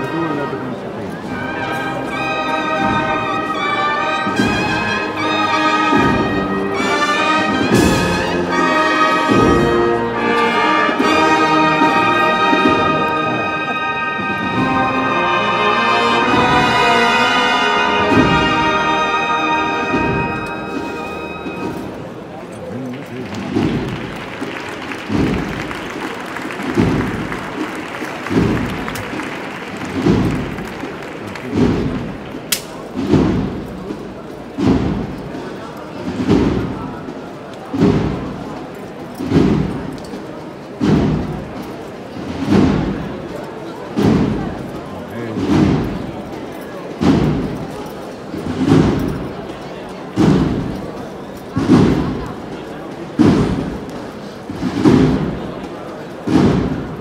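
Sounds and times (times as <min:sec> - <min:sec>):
brass band playing march: 0:00.0 - 0:22.2, 0:23.3 - 0:35.4, 0:36.0 - 0:38.6, 0:40.8 - 0:46.3, 0:47.0 - 0:50.8, 0:54.5 - 0:57.0
crowd chatter: 0:00.0 - 0:57.0
deep drum beats: 0:05.8 - 0:13.3, 0:18.0 - 0:22.0, 0:23.4 - 0:35.4, 0:36.0 - 0:38.5, 0:39.2 - 0:40.0, 0:40.8 - 0:41.6, 0:42.2 - 0:43.1, 0:44.0 - 0:44.7, 0:45.4 - 0:46.1, 0:50.2 - 0:50.8, 0:51.6 - 0:52.5, 0:53.2 - 0:53.9, 0:54.5 - 0:55.4, 0:56.2 - 0:57.0.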